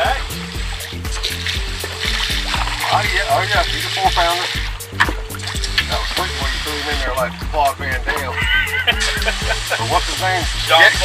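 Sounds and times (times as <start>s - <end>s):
background music with bass line: 0.0s - 11.0s
water spraying from hose nozzle: 0.0s - 11.0s.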